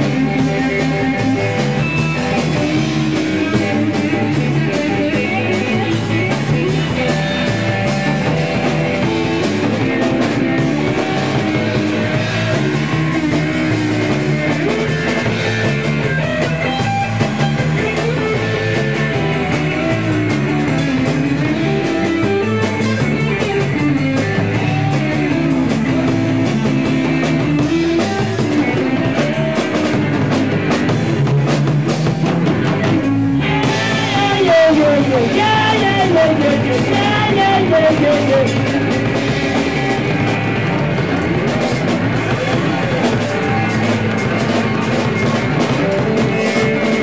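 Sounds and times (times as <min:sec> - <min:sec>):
drum kit with cymbals: 0:00.0 - 0:47.0
electric guitar: 0:00.0 - 0:47.0.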